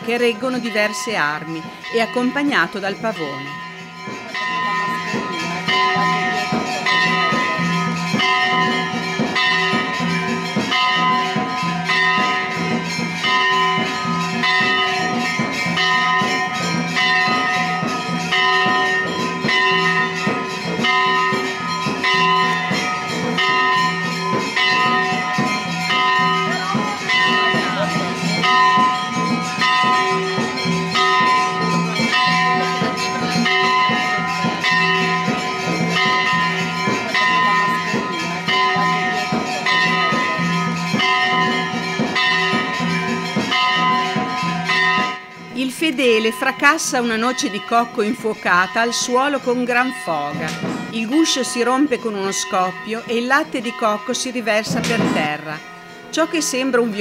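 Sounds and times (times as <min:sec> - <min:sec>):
temple bells clanging: 0:00.0 - 0:57.0.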